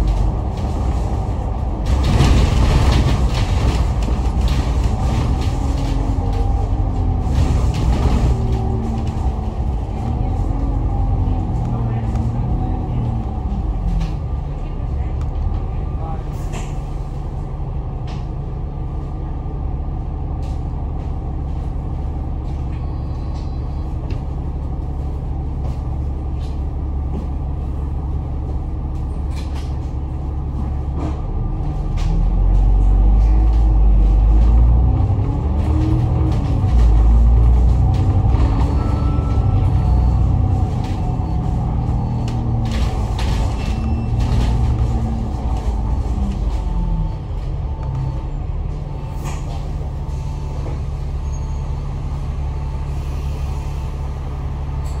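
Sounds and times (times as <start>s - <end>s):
bus accelerating through gears: 0.0s - 55.0s
bus engine idling: 0.0s - 55.0s.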